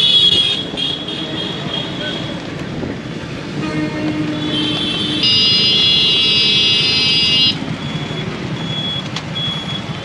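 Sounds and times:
street traffic rumble: 0.0s - 10.0s
electric vehicle horn: 3.6s - 7.6s.

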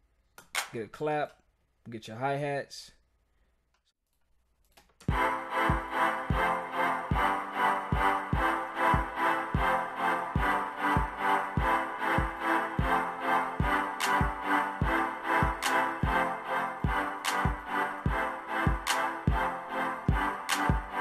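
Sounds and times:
programmed drum beat: 5.1s - 21.0s
synth chord progression: 5.1s - 21.0s.

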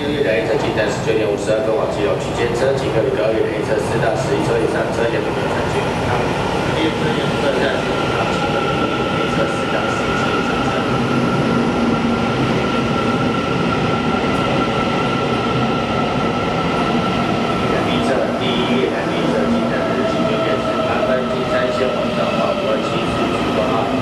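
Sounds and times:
high train whine: 0.0s - 24.0s
train wheels rumbling on rails: 0.0s - 24.0s.

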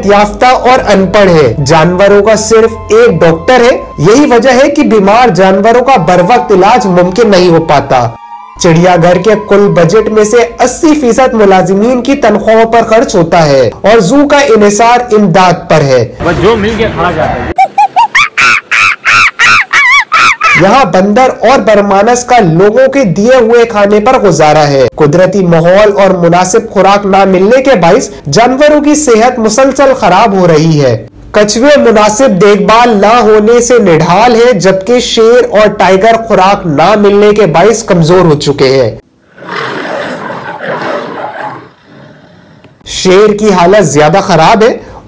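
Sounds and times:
animal harsh short calls: 17.6s - 20.6s
lion growling: 39.3s - 42.6s.

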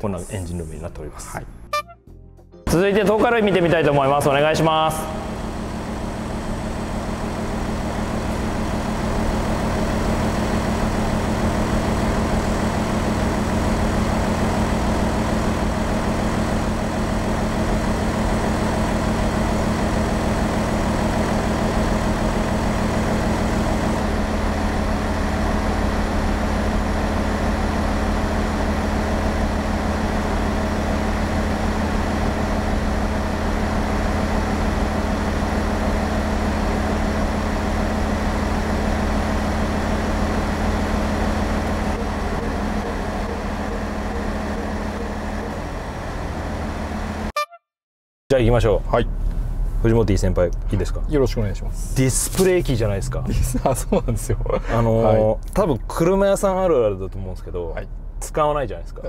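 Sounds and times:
diesel engine idling: 3.6s - 47.3s.

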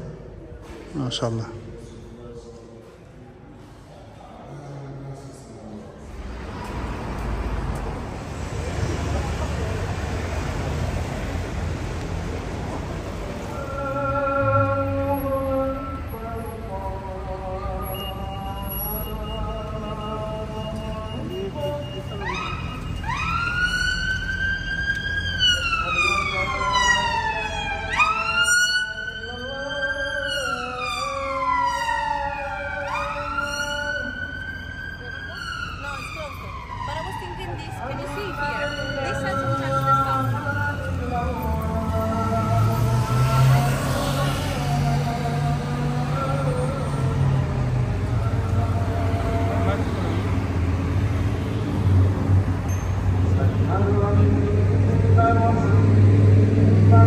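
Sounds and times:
passing traffic rumble: 0.0s - 57.0s
emergency vehicle siren wailing: 8.6s - 52.6s, 55.1s - 57.0s.

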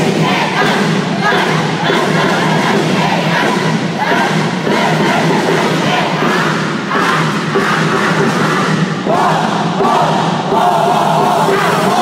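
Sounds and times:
loud music: 0.0s - 12.0s
young voices shouting and chanting: 0.0s - 12.0s.

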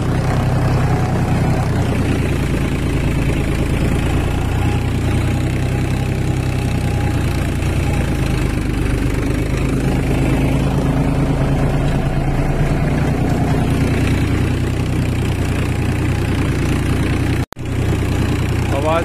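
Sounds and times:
rotavator tilling soil: 0.0s - 19.0s
tractor diesel engine under load: 0.0s - 19.0s.

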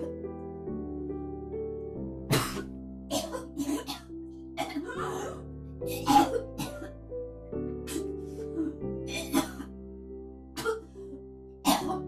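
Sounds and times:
woman retching and vomiting: 2.3s - 6.9s, 9.1s - 9.7s.

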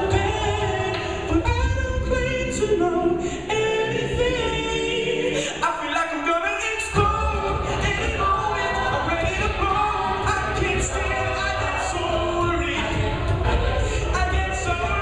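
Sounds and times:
backing vocal harmonies: 0.0s - 15.0s
low vocal-percussion beat: 0.0s - 15.0s
male lead singing: 0.0s - 15.0s.

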